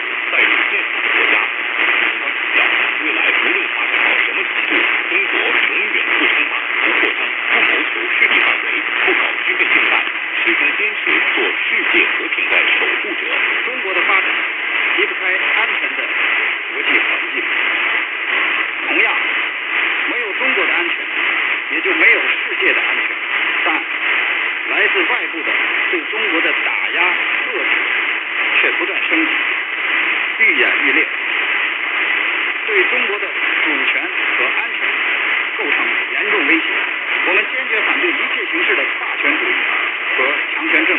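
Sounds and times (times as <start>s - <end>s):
muffled voice on radio: 0.0s - 40.9s
radio hiss and static: 0.0s - 40.9s.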